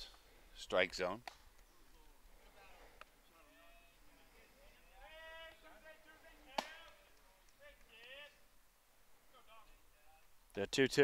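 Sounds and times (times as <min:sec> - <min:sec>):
sharp smack: 0:06.6 - 0:06.8.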